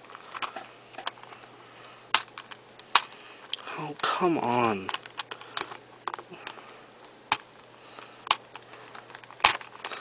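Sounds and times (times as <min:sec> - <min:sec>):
plastic puzzle pieces clicking: 0:04.8 - 0:06.2, 0:08.2 - 0:10.0.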